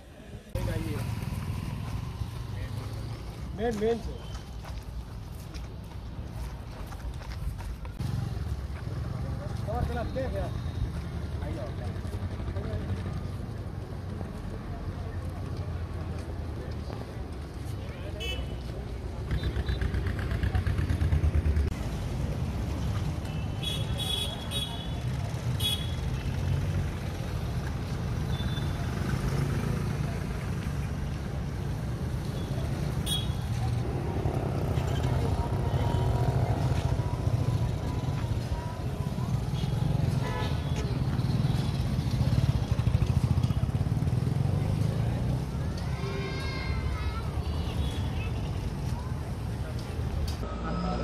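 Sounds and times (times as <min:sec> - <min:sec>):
traffic rumble: 0:00.0 - 0:51.0
vehicles and motorcycles passing: 0:00.0 - 0:51.0.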